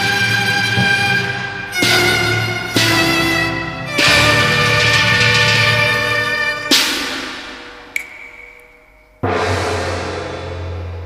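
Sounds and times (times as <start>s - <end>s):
high ringing percussion strike: 7.9s - 11.0s.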